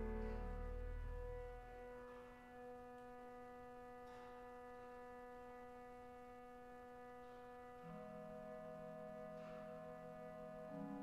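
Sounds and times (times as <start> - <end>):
pipe organ sustained chord: 0.0 - 11.0.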